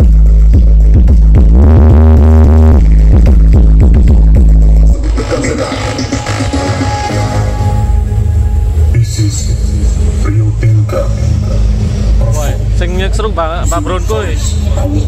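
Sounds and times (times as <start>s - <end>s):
loud electronic dance music: 0.0s - 8.2s.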